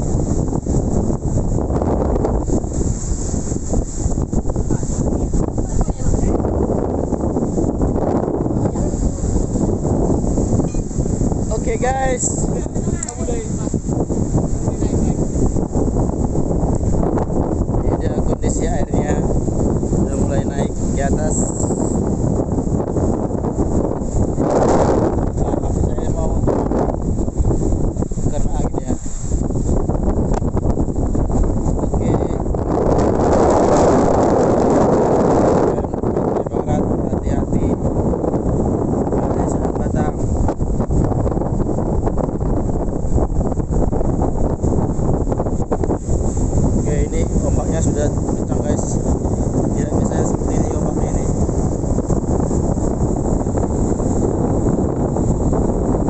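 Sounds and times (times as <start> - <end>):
storm wind buffeting microphone: 0.0 - 56.0.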